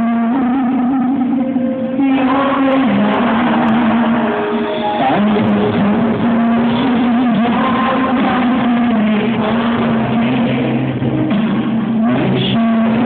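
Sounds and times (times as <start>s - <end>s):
man singing long notes: 0.0s - 13.0s
live rock band: 0.1s - 13.0s.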